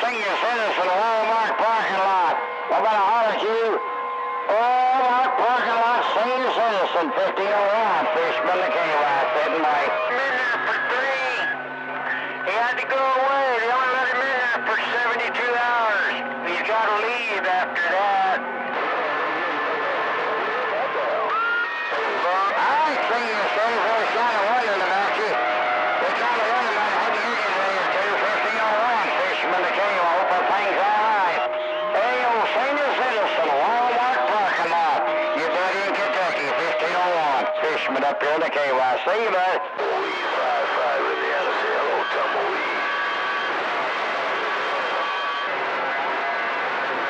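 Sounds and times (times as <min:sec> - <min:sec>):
radio static: 0:00.0 - 0:03.8, 0:04.4 - 0:47.0
garbled radio voices: 0:00.0 - 0:47.0
whistle tones: 0:31.3 - 0:32.0.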